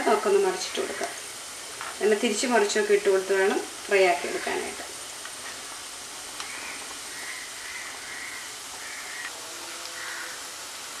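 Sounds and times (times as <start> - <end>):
food sizzling in hot oil: 0.0 - 11.0.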